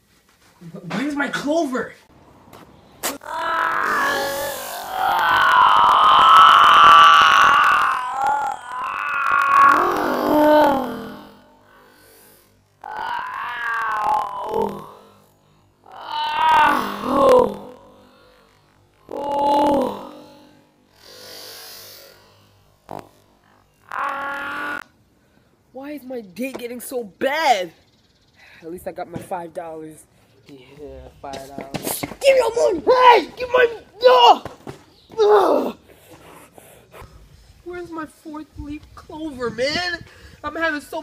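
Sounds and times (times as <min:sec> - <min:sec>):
boy wailing: 0:03.1 - 0:11.4, 0:12.8 - 0:14.9, 0:15.9 - 0:17.8, 0:19.1 - 0:20.3, 0:32.2 - 0:34.5, 0:35.2 - 0:35.8.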